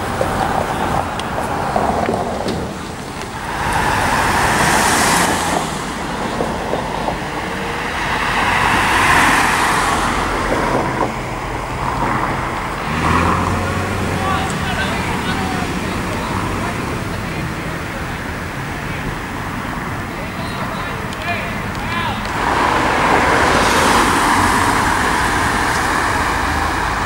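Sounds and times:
vehicles passing: 0.0 - 27.0.

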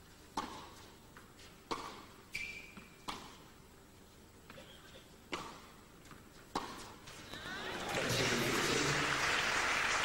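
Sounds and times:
racket hitting tennis ball: 0.3 - 3.6, 5.3 - 7.2.

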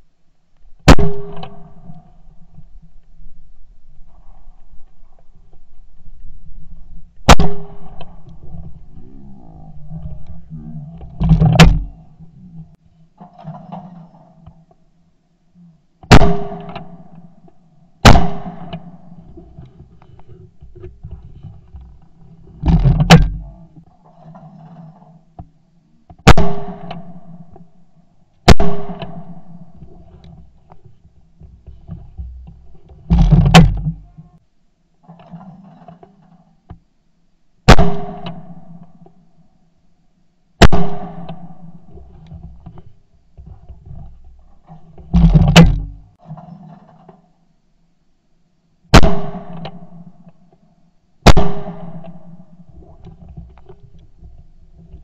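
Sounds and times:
loud clunk with sharp crack: 0.9 - 1.8, 7.3 - 8.2, 11.2 - 11.9, 16.1 - 17.2, 18.0 - 19.0, 22.7 - 23.4, 26.2 - 27.2, 28.5 - 29.6, 33.1 - 34.0, 37.7 - 38.9, 40.6 - 41.6, 51.2 - 52.2
shotgun shots: 0.9 - 1.8, 7.3 - 8.0, 16.1 - 17.1, 18.0 - 19.0, 26.3 - 27.2, 28.5 - 29.6, 37.7 - 38.6, 40.6 - 41.5, 48.9 - 49.9, 51.2 - 52.2.

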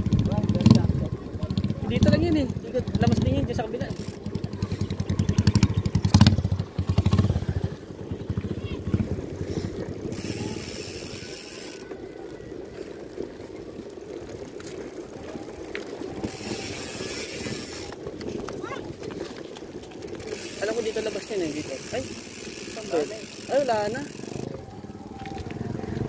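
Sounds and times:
pulsing rumble: 0.0 - 10.9
bicycle freewheel ticking: 0.0 - 26.0
wind buffeting microphone: 0.0 - 26.0.

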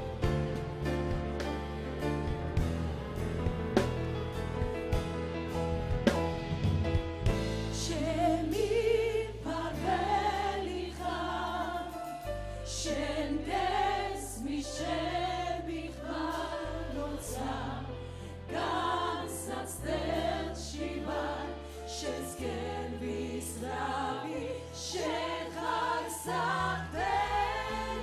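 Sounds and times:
held bass notes: 0.0 - 10.3
choir singing through microphones: 7.8 - 28.0.

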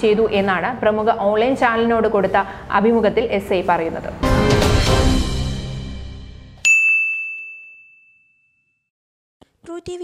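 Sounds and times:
musical hit: 4.2 - 6.5.

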